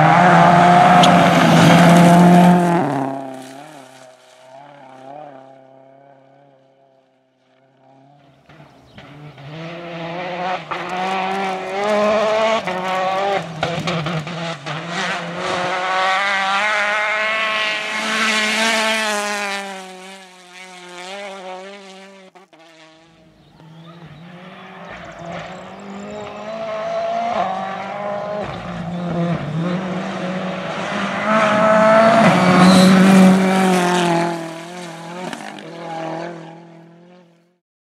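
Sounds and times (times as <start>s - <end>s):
rally car engines at full throttle: 0.0s - 37.6s.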